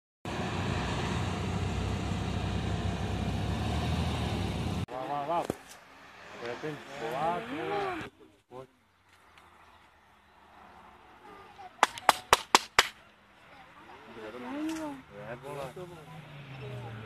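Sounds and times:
car engine running: 0:00.3 - 0:04.9.

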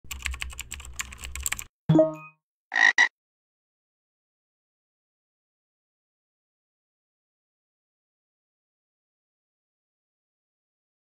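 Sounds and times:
computer keyboard typing: 0:00.1 - 0:01.7
frog croaking: 0:02.7 - 0:03.1.

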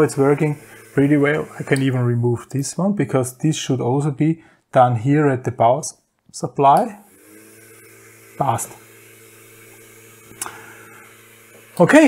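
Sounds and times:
electric motor spinning propeller: 0:00.0 - 0:02.0, 0:07.0 - 0:12.0.

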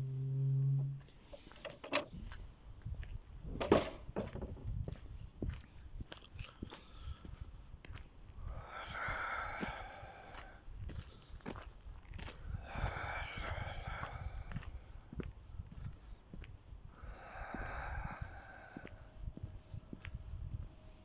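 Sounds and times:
long breathy hisses: 0:08.4 - 0:10.6, 0:12.4 - 0:14.6, 0:16.9 - 0:19.1.

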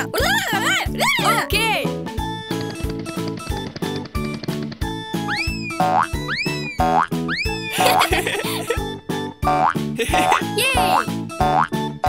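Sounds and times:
upbeat cartoon music: 0:00.0 - 0:12.0.

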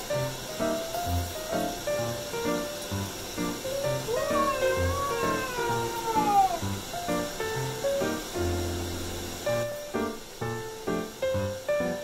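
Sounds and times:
kitten meowing: 0:04.0 - 0:06.8.

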